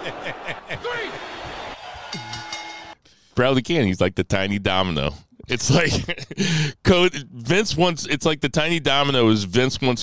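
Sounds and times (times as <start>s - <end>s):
faint high ringing: 2.2s - 3.0s.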